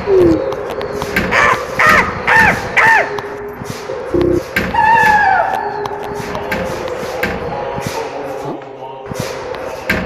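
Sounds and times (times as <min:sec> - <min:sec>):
crow-like cawing calls: 0:01.3 - 0:03.2.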